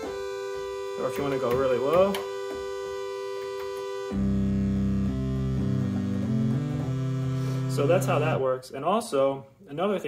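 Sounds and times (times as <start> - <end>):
synthesizer bass notes: 0.0 - 8.5
synthesizer note: 0.0 - 8.5.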